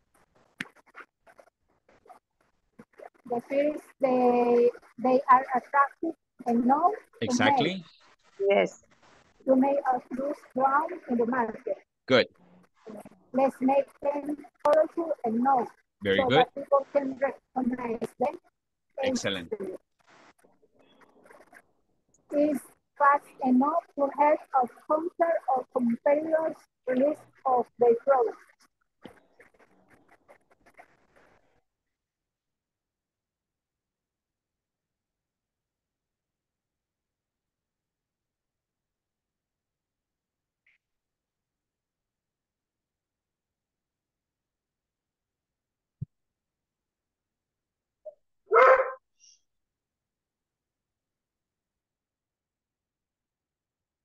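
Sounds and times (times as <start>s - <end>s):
dog bark: 48.5s - 49.0s.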